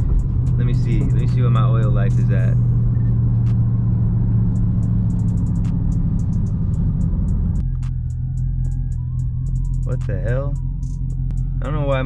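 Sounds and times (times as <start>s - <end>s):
car engine drone inside cabin: 0.0s - 12.0s.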